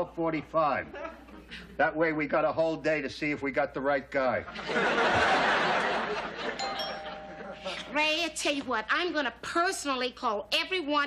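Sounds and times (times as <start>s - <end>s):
studio audience laughter: 4.4s - 6.6s
ding-dong doorbell chime: 6.6s - 7.9s
person speaking: 6.6s - 9.4s.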